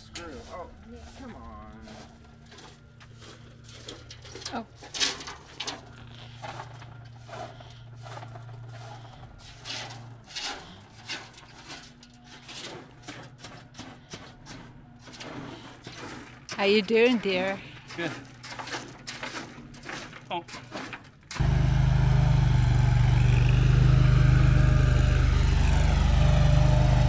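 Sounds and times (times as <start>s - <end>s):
broom sweeping gravel on metal: 0.0s - 16.3s.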